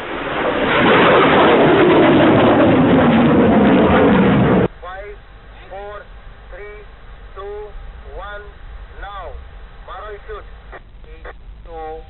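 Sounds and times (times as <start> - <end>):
rocket motor rushing roar: 0.0 - 4.7.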